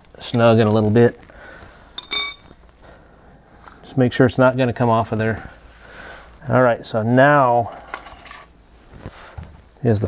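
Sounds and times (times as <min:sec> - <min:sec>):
man speaking: 0:06.4 - 0:07.7, 0:09.8 - 0:10.0.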